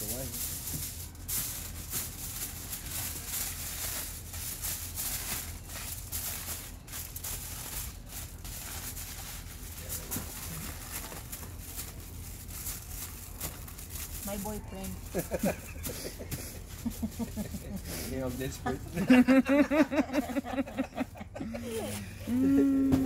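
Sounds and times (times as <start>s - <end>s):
aluminium foil crinkling: 0.0s - 19.5s.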